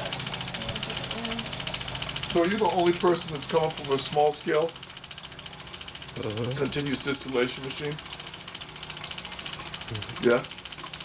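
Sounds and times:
machine humming with fast pulsing: 0.0s - 11.0s.

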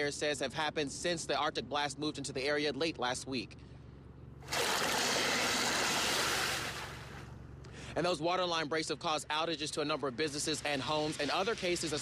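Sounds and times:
water rushing and splashing: 4.4s - 7.3s.

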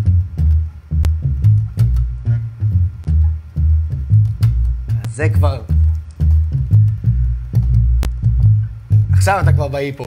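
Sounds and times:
electric bass guitar line: 0.0s - 10.0s.

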